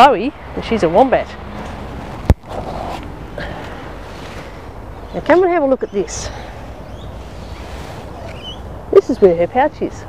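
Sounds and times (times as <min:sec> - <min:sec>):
faint rustling: 0:06.4 - 0:08.6.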